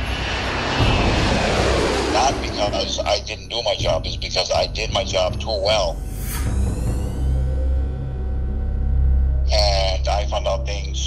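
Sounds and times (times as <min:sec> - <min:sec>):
jet engines roaring at takeoff: 0:00.0 - 0:04.5.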